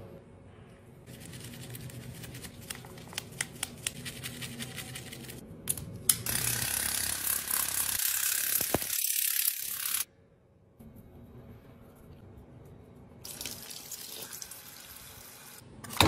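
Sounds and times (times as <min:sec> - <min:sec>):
stiff brush scrubbing: 0:01.1 - 0:05.4.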